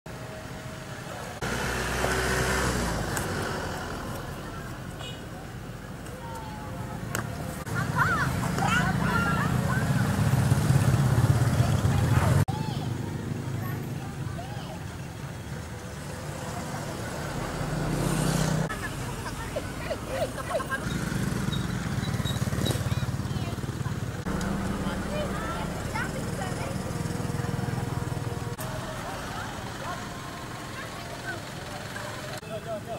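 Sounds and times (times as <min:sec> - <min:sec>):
crowd voices: 0:00.2 - 0:32.9
motorcycle engines running: 0:00.9 - 0:32.6.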